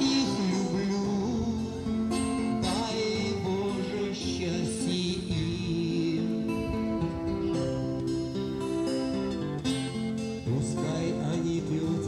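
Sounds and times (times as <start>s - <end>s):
guitar through small amplifier: 0.0s - 12.0s.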